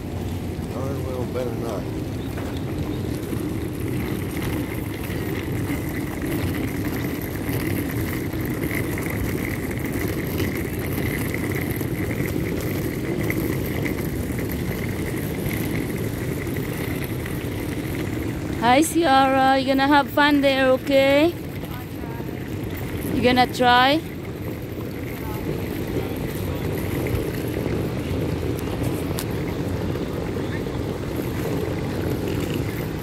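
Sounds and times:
suitcase wheels rolling on asphalt: 0.0s - 33.0s.

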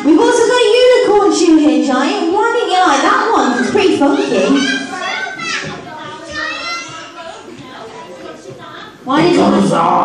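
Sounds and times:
children calling out: 3.4s - 7.5s.

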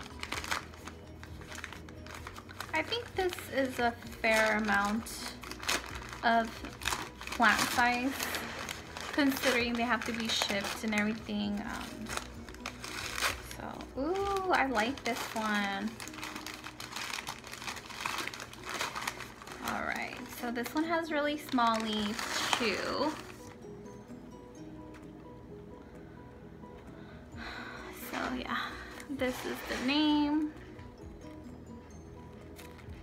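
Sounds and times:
packing material rustling: 0.0s - 23.6s, 28.0s - 30.8s, 32.4s - 33.0s.

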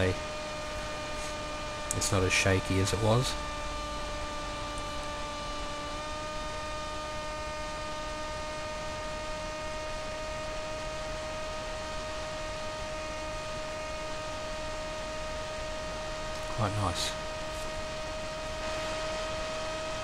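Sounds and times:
electric motor and propeller whine: 0.0s - 20.0s.

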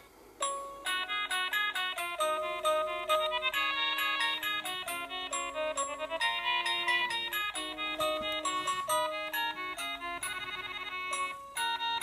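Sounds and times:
electronic melody of ringing notes: 0.4s - 12.0s.

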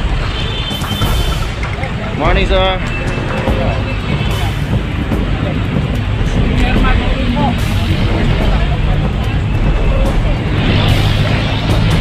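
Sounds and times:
vehicle engines rumbling: 0.0s - 12.0s
indistinct voices: 1.0s - 12.0s.

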